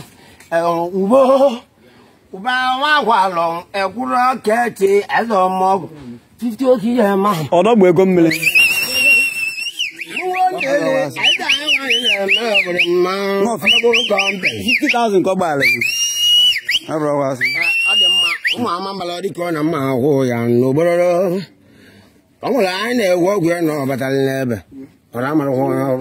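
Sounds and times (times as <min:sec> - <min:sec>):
men's voices: 0:00.0 - 0:26.0
high warbling whistle: 0:08.3 - 0:18.7.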